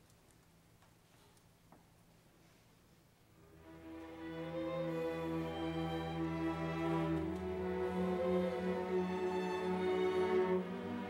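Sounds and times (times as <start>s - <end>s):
faint clicks: 0.0s - 2.2s.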